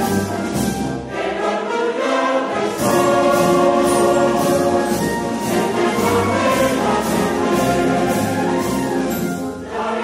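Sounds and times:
wind band playing: 0.0 - 10.0
mixed choir singing: 1.0 - 10.0.

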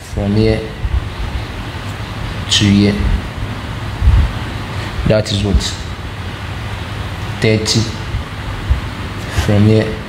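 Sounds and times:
background hiss: 0.0 - 10.0
low rumble: 3.0 - 4.8, 7.9 - 9.2.

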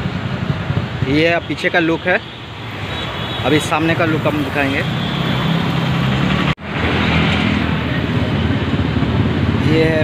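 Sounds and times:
motor vehicles passing: 0.0 - 10.0
motorbikes running: 0.0 - 10.0.

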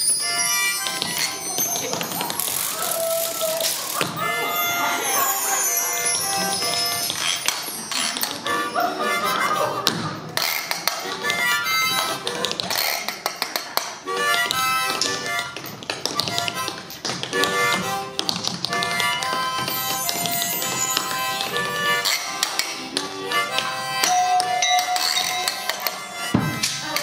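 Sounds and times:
harmonica chords: 0.0 - 27.0.

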